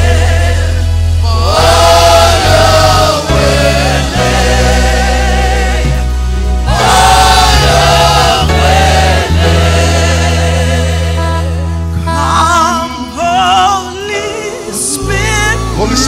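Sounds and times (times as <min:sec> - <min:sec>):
group singing gospel: 0:00.0 - 0:16.0.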